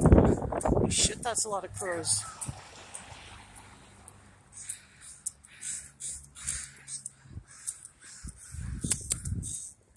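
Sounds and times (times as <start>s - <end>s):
crows cawing: 2.2s - 2.6s, 4.2s - 9.9s.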